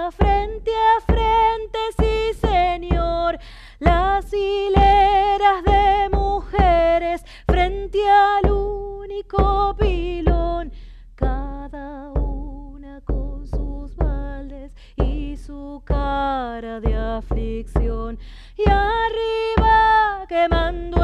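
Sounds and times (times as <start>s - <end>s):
frame drum struck with mallet: 0.0s - 21.0s.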